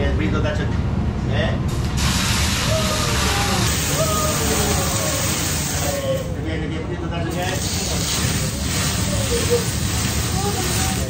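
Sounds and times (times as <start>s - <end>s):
hot oil sizzling and hissing: 1.8s - 6.4s, 7.3s - 11.0s.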